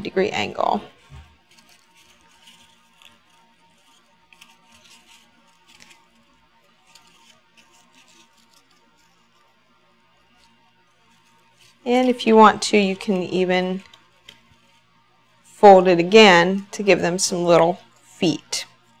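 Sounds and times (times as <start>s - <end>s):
pipe cleaners rustling and scratching: 0.3s - 15.6s.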